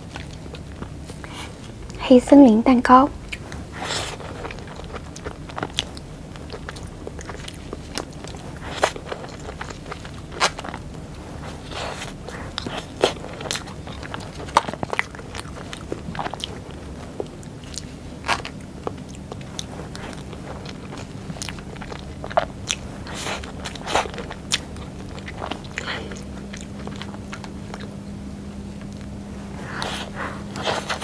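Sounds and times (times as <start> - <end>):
wet chewing and mouth smacks: 3.2 - 31.0.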